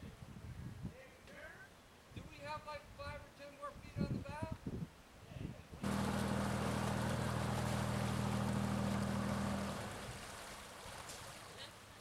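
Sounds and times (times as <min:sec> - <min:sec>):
low engine hum: 0:05.8 - 0:10.5.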